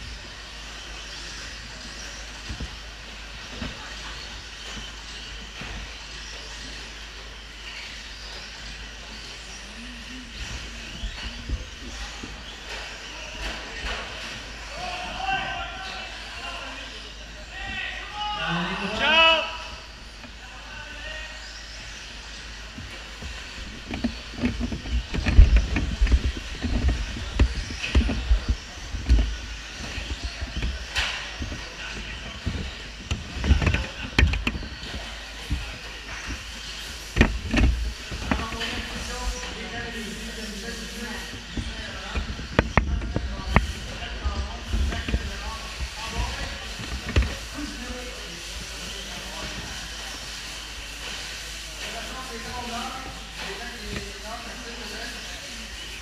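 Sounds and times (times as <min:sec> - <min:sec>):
background hiss: 0:00.0 - 0:56.0
echoing voices: 0:00.0 - 0:56.0.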